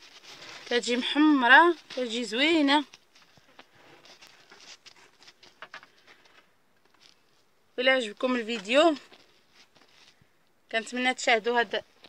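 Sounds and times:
hands rustling bread loaves: 0.0 - 12.0.

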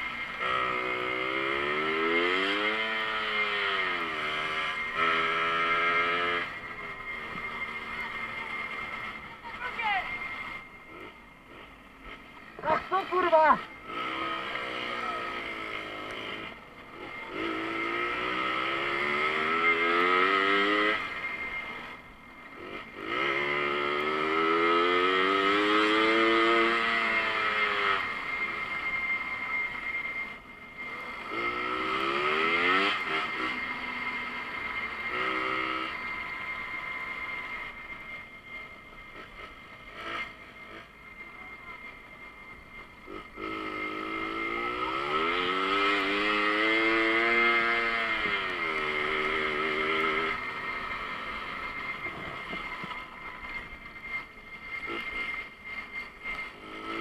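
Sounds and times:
moped engine revving: 0.0 - 57.0
steady high whine: 0.0 - 57.0.

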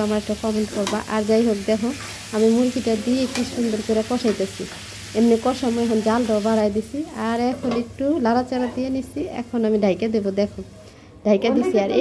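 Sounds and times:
chicken sizzling in oil: 0.0 - 8.4
woman talking: 0.0 - 12.0.

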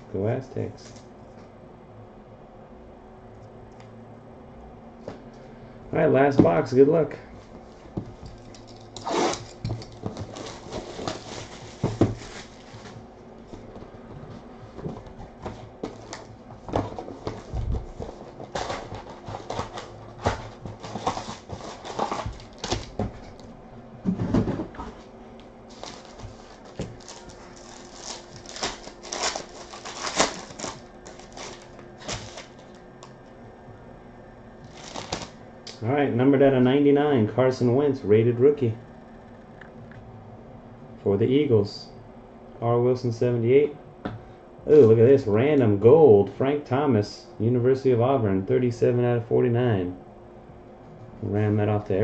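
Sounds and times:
box being cut open: 9.0 - 9.5
foil packs crinkling and tearing: 9.0 - 13.0, 18.5 - 23.0, 25.7 - 33.1, 34.6 - 35.4.

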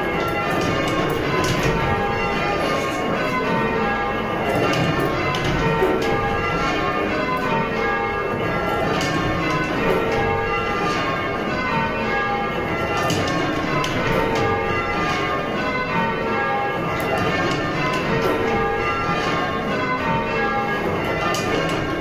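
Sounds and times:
church bells ringing changes: 0.0 - 22.0.

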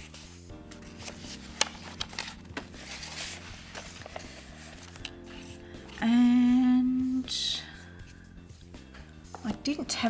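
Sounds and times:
paper pad rustling: 0.0 - 6.1.

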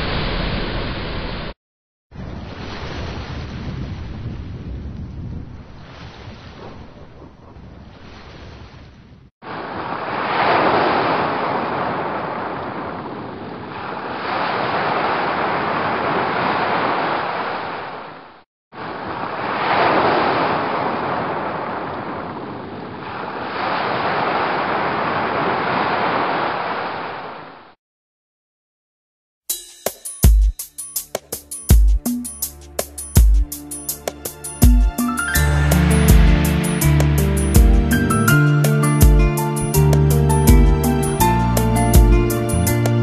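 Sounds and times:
ocean surf washing onto beach: 2.2 - 4.7, 9.4 - 18.2, 18.8 - 27.5, 34.3 - 39.3.

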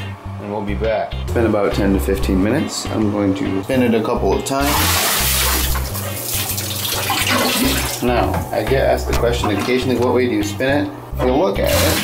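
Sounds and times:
water splashing into a bathtub: 4.6 - 8.0, 11.7 - 12.0.

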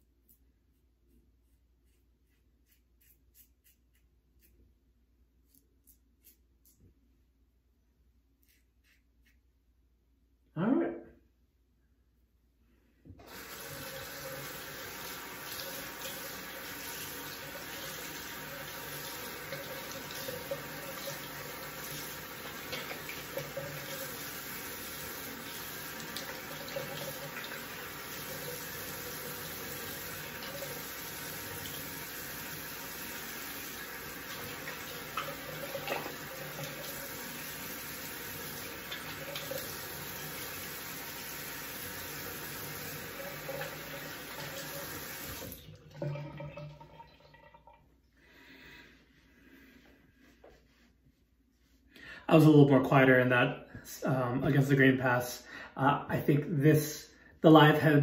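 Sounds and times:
sink tap running: 13.2 - 47.8.

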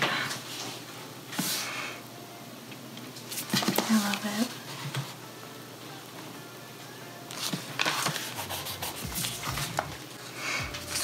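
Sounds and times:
paper rustling: 7.3 - 11.0.

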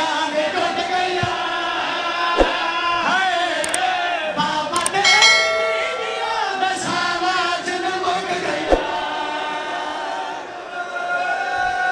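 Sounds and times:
electronic bell ding: 4.8 - 7.2.

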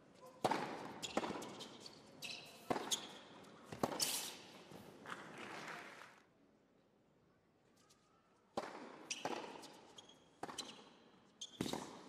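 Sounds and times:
racket hitting tennis ball: 0.4 - 1.6, 2.6 - 4.4, 8.6 - 9.8, 11.5 - 12.0.

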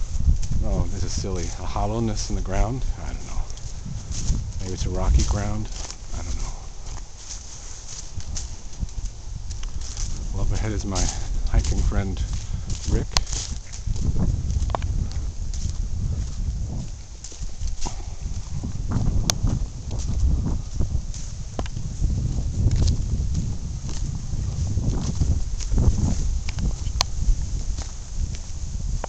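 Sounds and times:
footsteps on leafy dirt trail: 0.0 - 29.0
low microphone rumble: 0.0 - 29.0.

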